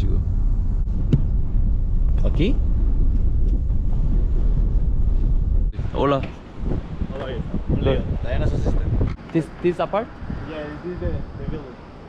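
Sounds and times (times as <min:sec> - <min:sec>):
road noise inside car: 0:00.0 - 0:05.8
car engine rumble: 0:00.0 - 0:11.8.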